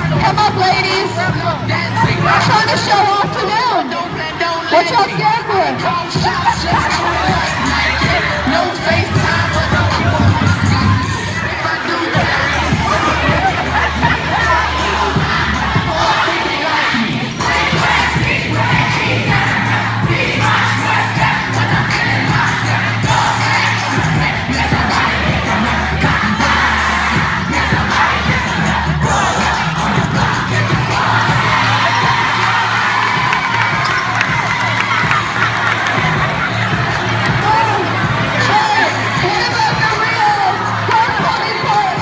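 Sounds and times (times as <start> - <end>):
dance music over loudspeaker: 0.0 - 42.0
children cheering and shouting: 5.7 - 42.0.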